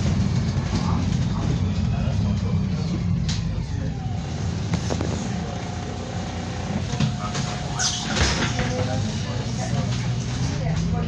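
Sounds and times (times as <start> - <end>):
bus diesel engine rumble: 0.0 - 11.0.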